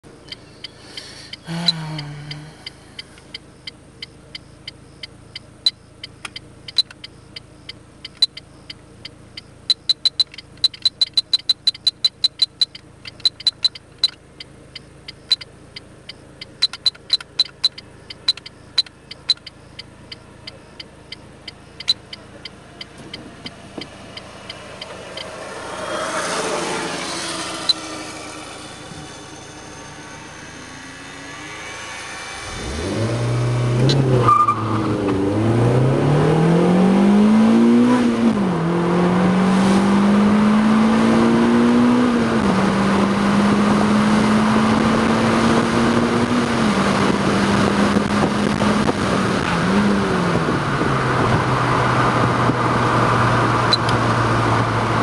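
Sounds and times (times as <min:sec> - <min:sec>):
vehicle passing: 0:22.6 - 0:42.1.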